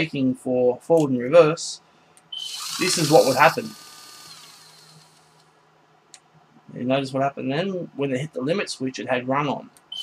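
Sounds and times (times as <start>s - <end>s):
gear motor whine winding down: 2.4s - 5.4s.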